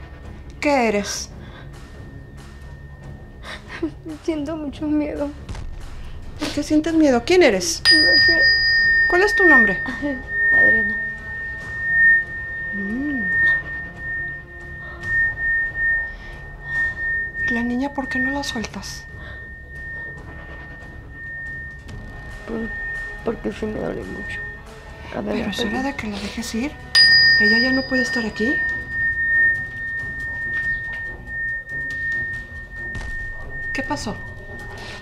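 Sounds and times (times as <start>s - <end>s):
high pure tone: 0.0s - 4.6s, 7.5s - 35.0s.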